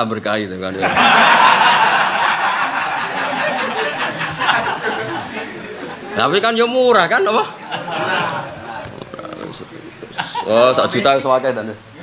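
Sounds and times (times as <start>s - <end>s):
audience laughing: 0.8s - 6.3s, 7.4s - 9.1s, 9.9s - 11.0s.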